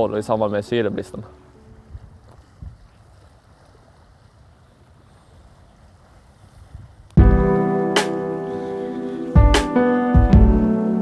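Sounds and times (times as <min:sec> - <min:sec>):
sea waves washing: 0:00.0 - 0:11.0
wind rumble on microphone: 0:01.6 - 0:07.6.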